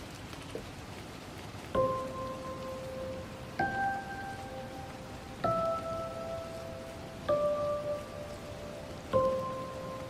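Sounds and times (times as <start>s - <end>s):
slow soft music: 0.0s - 10.0s
steady rain: 0.0s - 10.0s.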